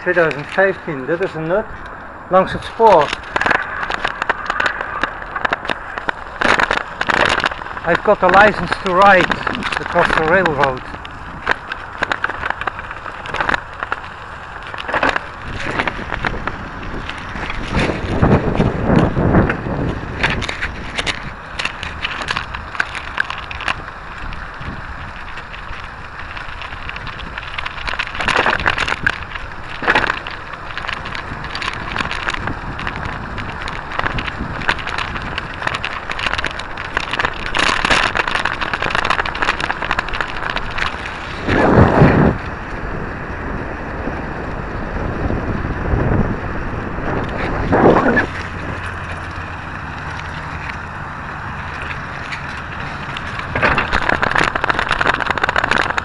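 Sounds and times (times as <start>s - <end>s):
clicks and rattles: 0.0s - 42.5s, 51.6s - 56.0s
rolling rumble: 0.0s - 56.0s
wind on microphone: 0.0s - 56.0s.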